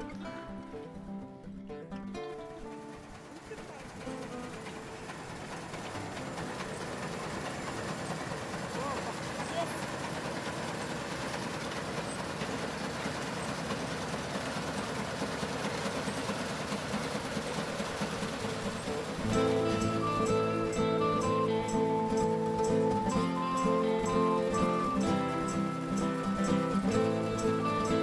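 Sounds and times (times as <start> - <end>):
combine harvester clatter: 2.3 - 28.0.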